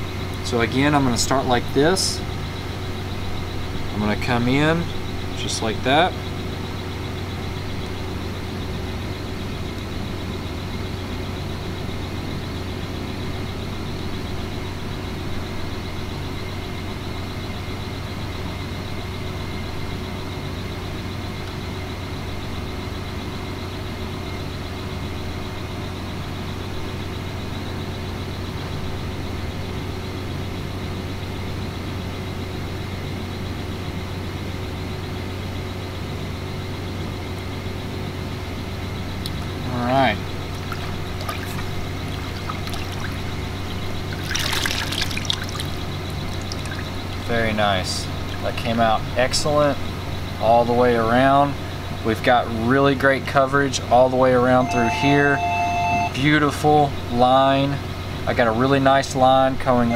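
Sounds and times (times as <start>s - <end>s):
faint steady higher tones: 0.0s - 33.6s, 38.8s - 44.9s, 45.5s - 59.9s
low machine hum: 0.0s - 59.9s.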